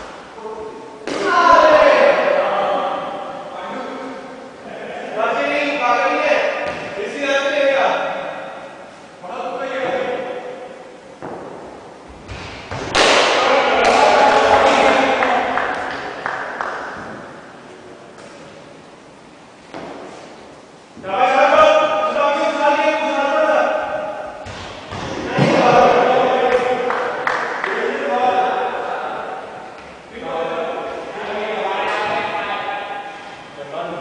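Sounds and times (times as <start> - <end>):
players calling and shouting: 0.0 - 18.3, 20.8 - 34.0
players shouting: 1.1 - 3.2, 12.9 - 16.4, 25.1 - 28.9.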